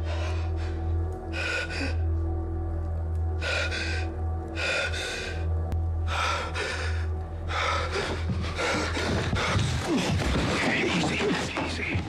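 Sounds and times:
low musical drone: 0:00.0 - 0:12.0.

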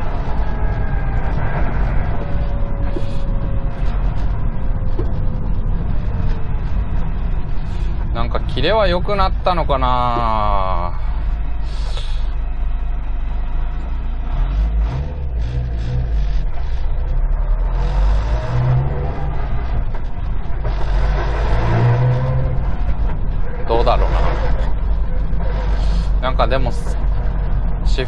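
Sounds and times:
car engine revving with gear changes: 0:00.0 - 0:28.0.

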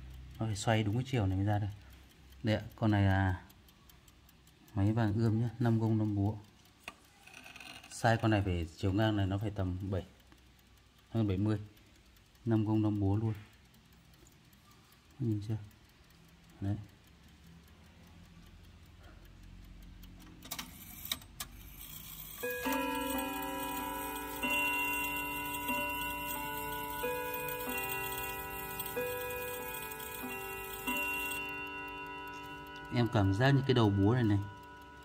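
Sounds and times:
clock movement clicks: 0:00.0 - 0:35.0
clock chime tune: 0:22.2 - 0:35.0.

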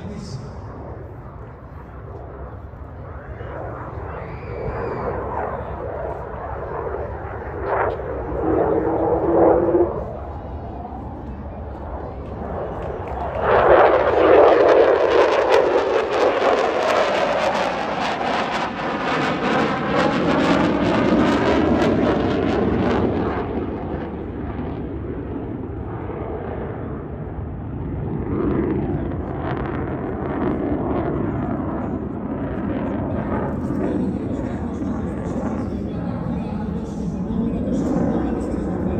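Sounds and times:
distant jet rumble: 0:00.0 - 0:38.9
jet passing close by: 0:00.0 - 0:38.9.

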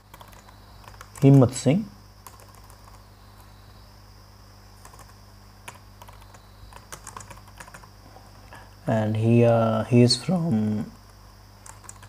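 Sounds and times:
computer keyboard typing: 0:00.0 - 0:01.6, 0:02.2 - 0:03.5, 0:04.8 - 0:07.9, 0:11.0 - 0:12.0
steady low hum: 0:00.0 - 0:12.0.

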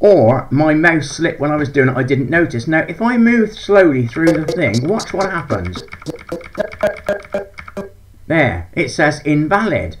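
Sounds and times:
stuttering clipped audio fragments: 0:04.0 - 0:07.9
playback clicks: 0:04.1 - 0:08.0.

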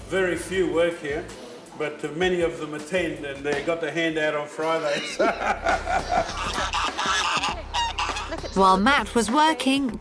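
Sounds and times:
waterfowl honking: 0:06.4 - 0:08.6.

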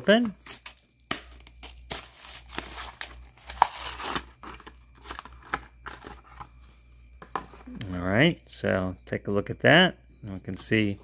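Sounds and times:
cardboard tearing: 0:01.5 - 0:05.2.

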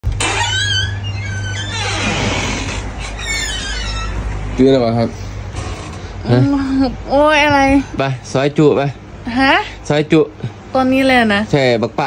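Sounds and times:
door hinges creaking: 0:00.0 - 0:04.7, 0:05.4 - 0:06.2.

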